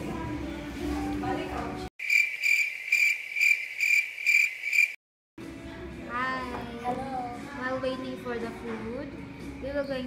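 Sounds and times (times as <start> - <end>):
cricket chirping: 2.0 - 5.0.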